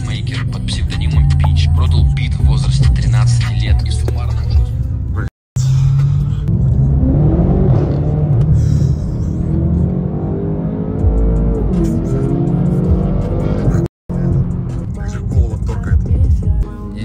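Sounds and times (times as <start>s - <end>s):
music playing: 0.0s - 6.5s, 10.7s - 17.0s
car engine from inside cabin: 4.9s - 16.1s.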